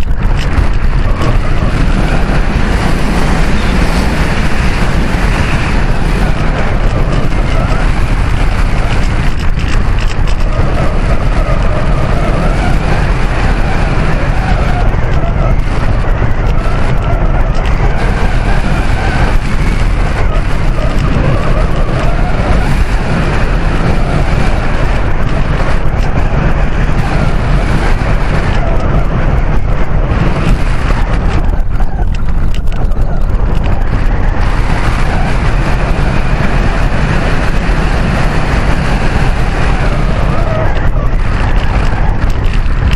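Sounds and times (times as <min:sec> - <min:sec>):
loud steady wind noise: 0:00.0 - 0:42.9.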